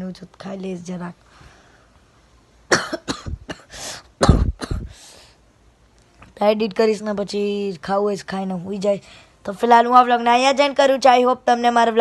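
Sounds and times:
person coughing: 0:02.7 - 0:05.0.

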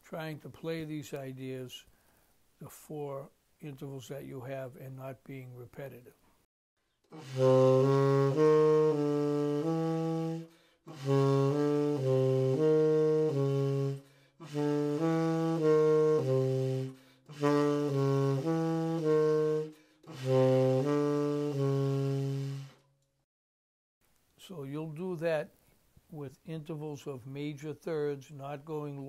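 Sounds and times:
tenor saxophone playing short phrases: 0:07.1 - 0:22.8.

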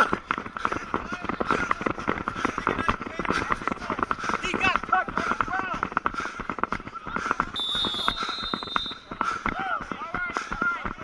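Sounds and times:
referee's whistle blast: 0:07.6 - 0:09.1.

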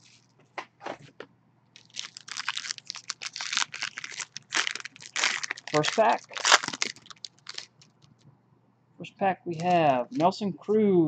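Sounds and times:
foil wrapper crinkling and tearing: 0:01.8 - 0:08.0.

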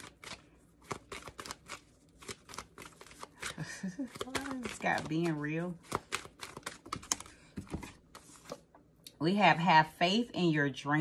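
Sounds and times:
cards being shuffled: 0:00.0 - 0:08.7.

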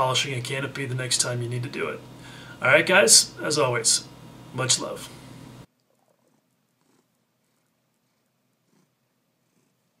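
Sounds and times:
cat purring: 0:05.8 - 0:10.0.

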